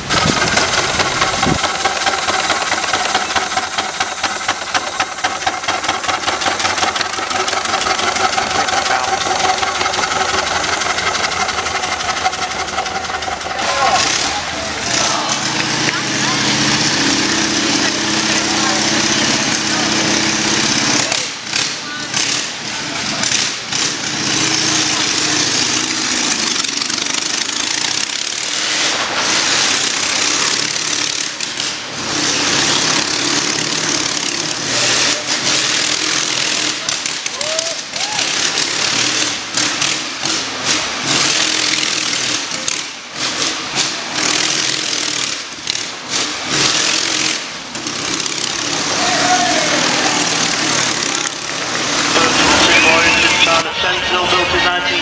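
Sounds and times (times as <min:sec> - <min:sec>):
crowd voices: 0:00.0 - 0:27.6, 0:34.2 - 0:38.9, 0:48.2 - 0:55.0
motorcycle engine revving: 0:00.0 - 0:37.3, 0:38.3 - 0:54.4.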